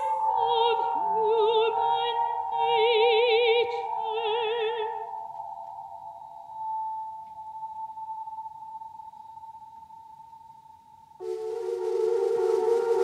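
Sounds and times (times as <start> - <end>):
synthesizer chord drone: 11.2 - 13.0.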